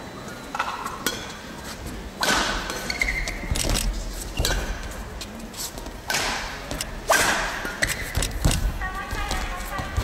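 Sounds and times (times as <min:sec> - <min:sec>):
racket hitting shuttlecock: 0:02.2 - 0:03.0, 0:06.1 - 0:08.7.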